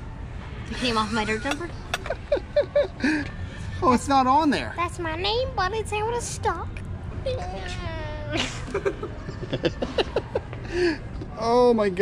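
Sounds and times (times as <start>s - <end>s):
boy laughing: 0.8s - 3.3s, 8.2s - 10.5s.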